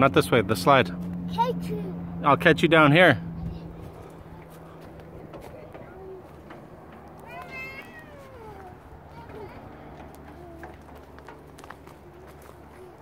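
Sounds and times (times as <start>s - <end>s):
child squealing: 7.2s - 9.6s.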